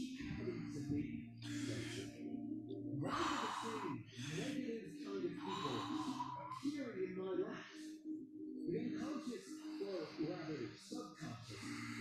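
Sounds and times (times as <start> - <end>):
faint voices: 0.0 - 12.0
person breathing hard: 0.3 - 2.2, 3.0 - 4.6, 5.4 - 6.6, 11.4 - 12.0.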